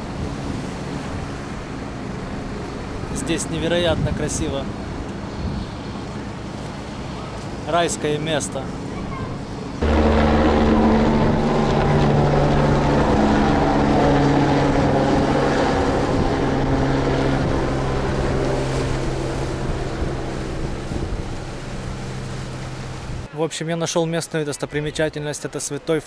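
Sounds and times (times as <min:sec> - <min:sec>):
engine droning: 0:09.5 - 0:23.3.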